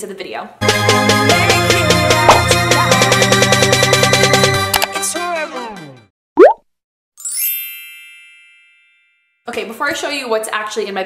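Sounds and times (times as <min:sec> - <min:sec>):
rising bloop pop: 0:02.2 - 0:02.5, 0:06.4 - 0:06.6
bell-like ding: 0:07.3 - 0:09.4.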